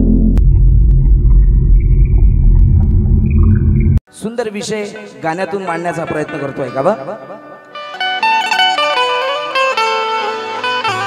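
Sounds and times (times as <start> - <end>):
deep rumble: 0.0 - 4.0.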